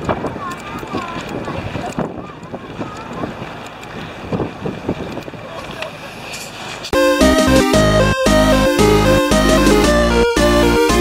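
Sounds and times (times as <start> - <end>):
wind buffeting microphone: 0.0 - 6.0.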